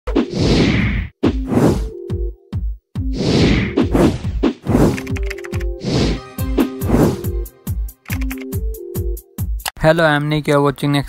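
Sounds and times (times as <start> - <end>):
whoosh sound effects: 5.8 - 7.3.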